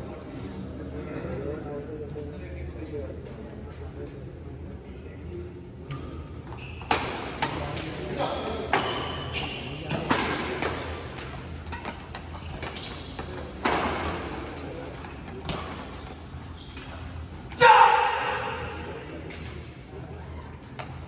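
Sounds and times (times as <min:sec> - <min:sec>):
shoe squeaks on court floor: 0:06.5 - 0:07.4, 0:08.2 - 0:10.2, 0:11.7 - 0:13.8, 0:15.5 - 0:17.2.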